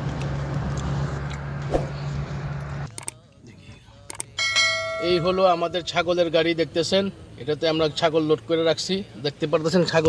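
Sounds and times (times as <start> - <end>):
vehicle cabin rumble: 0.0 - 3.8
ringing bell chime: 4.4 - 5.8.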